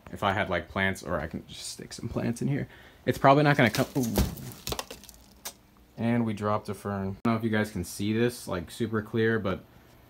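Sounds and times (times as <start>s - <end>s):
potted plant thud on carpet: 3.6s - 5.3s.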